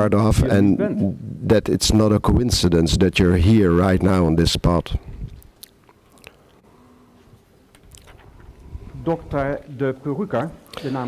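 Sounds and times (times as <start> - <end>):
faint mouth clicks: 5.2 - 6.6, 7.8 - 8.6.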